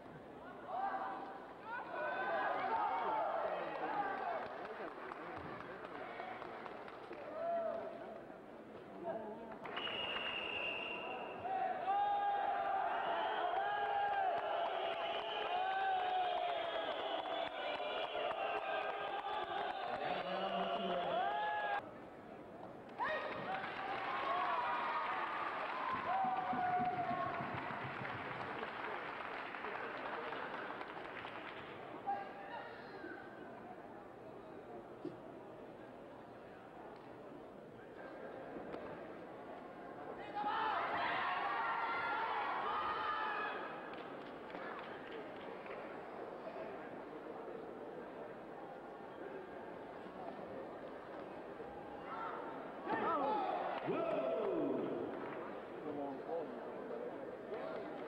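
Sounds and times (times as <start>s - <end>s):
crowd chatter echoing in a hall: 0.0s - 58.0s.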